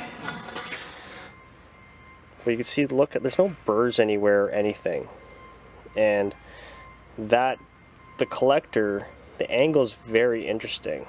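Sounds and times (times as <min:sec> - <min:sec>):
metal pipe rubbing and rustling: 0:00.0 - 0:01.4
faint steady tones: 0:00.0 - 0:11.0.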